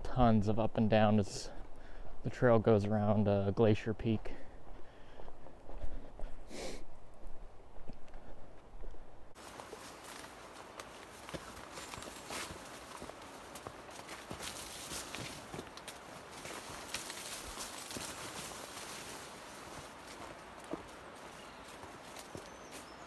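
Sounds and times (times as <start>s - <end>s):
footsteps on dirt trail: 1.0s - 23.0s
leaves rustling against body: 9.4s - 23.0s.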